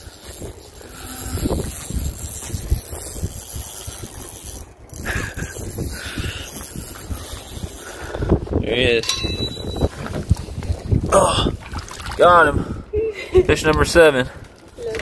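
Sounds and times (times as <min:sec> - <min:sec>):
fishing reel cranking: 0:00.0 - 0:08.3
wind buffeting microphone: 0:00.0 - 0:15.0.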